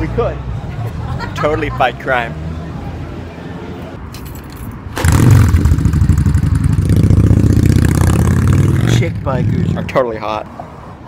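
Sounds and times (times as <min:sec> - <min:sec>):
motorcycle engine pulling away: 0:05.0 - 0:10.0.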